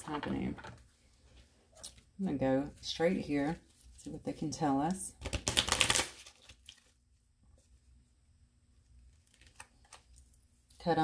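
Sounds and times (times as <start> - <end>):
cards rustling and clicking: 5.2 - 6.9.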